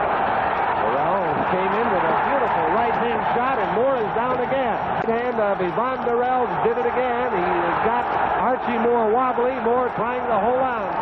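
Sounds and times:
male commentator talking: 0:00.8 - 0:11.0.

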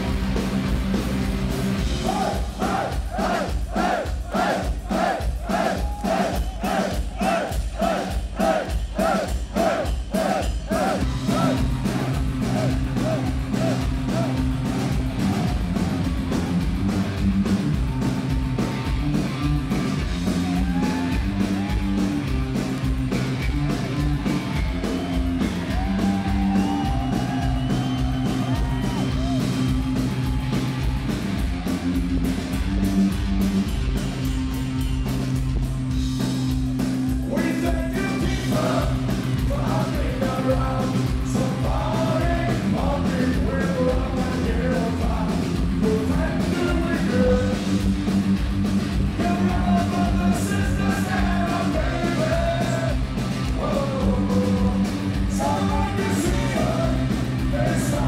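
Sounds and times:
live rock band: 0:00.0 - 0:58.0
person singing: 0:37.3 - 0:47.6, 0:53.6 - 0:58.0.

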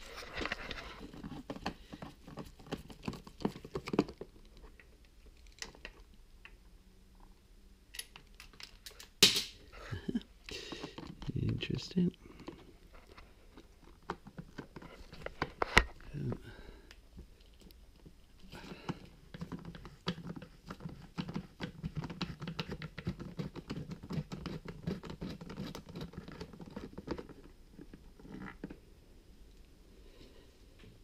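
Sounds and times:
plastic and rubber parts rustling: 0:00.0 - 0:06.1, 0:10.0 - 0:28.8.

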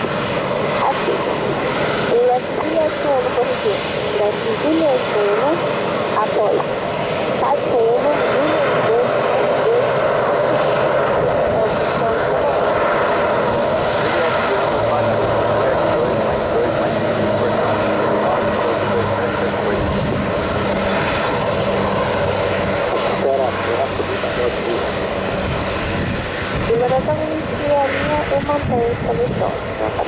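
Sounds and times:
jet engine whine and rush: 0:00.0 - 0:30.0.

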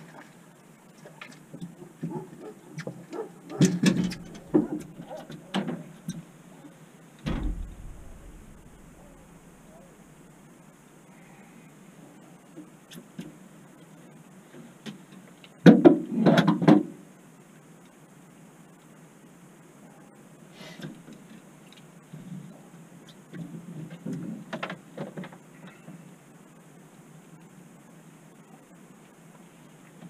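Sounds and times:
knocks and clatter on boat: 0:03.5 - 0:05.8, 0:07.3 - 0:10.2.

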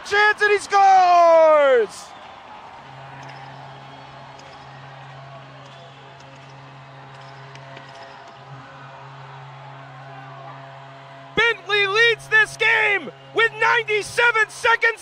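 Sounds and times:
arena crowd noise: 0:00.0 - 0:15.0
steady low drone: 0:02.8 - 0:14.4.

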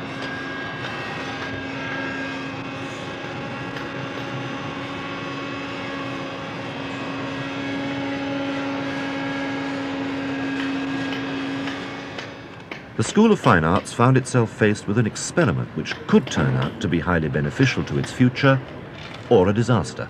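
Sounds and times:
vacuum cleaner running: 0:00.0 - 0:14.3.

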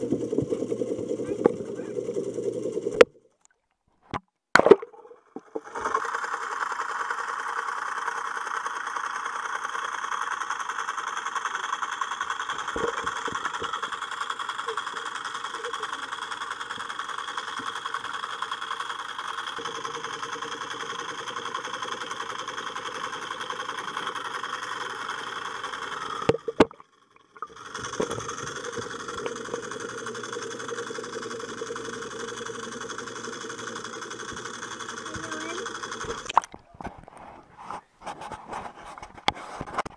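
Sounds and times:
muffled underwater noise: 0:00.0 - 0:03.0, 0:14.5 - 0:16.9.

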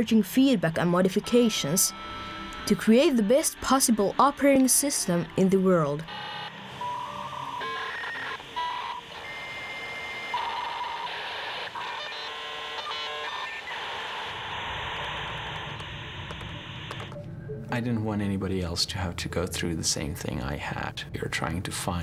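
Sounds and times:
dial-up modem connecting: 0:00.0 - 0:17.2.

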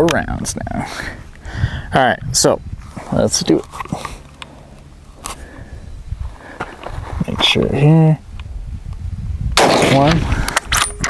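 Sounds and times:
wind rumble on microphone: 0:00.1 - 0:03.6, 0:05.4 - 0:11.0.

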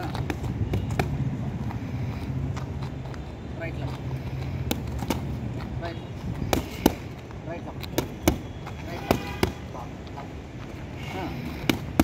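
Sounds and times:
boxing gloves smacking pads: 0:06.4 - 0:07.2, 0:07.8 - 0:08.4, 0:11.5 - 0:12.0.

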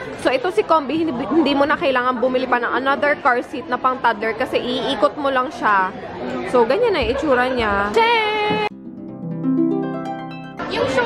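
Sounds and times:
background chatter: 0:00.0 - 0:08.7, 0:10.2 - 0:11.0
woman talking: 0:00.2 - 0:08.7.

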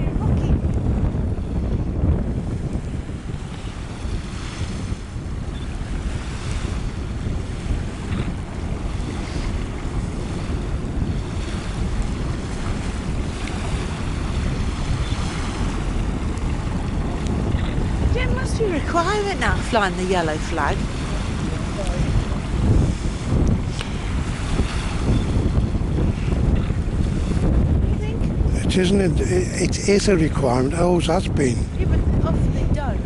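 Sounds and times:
wash of open water: 0:00.0 - 0:33.0
wind buffeting microphone: 0:00.0 - 0:33.0.

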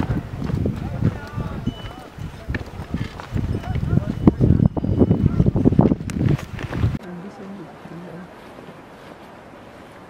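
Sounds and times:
footsteps on stony trail: 0:00.0 - 0:07.1
people talking and calling: 0:00.0 - 0:09.0.

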